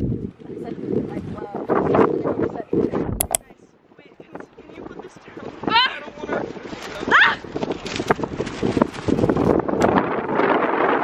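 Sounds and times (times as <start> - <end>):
wind buffeting microphone: 0.0 - 11.0
sharp clicks: 3.2 - 3.5.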